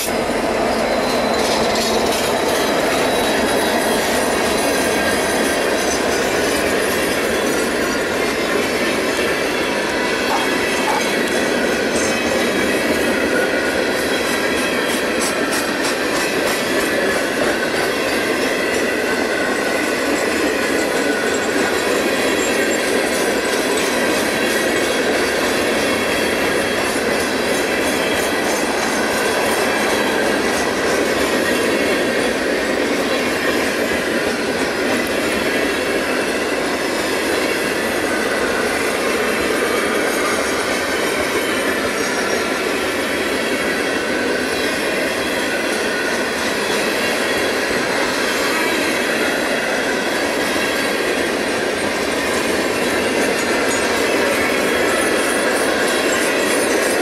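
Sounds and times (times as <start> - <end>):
high wheel squeal: 0.0 - 16.0
train wheels rumbling and rattling: 0.0 - 57.0.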